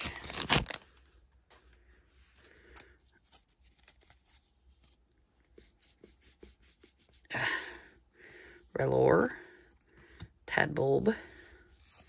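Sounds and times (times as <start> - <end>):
cards rustling and clicking: 0.0 - 1.0, 2.6 - 5.2
foil wrapper crinkling and tearing: 0.0 - 1.0.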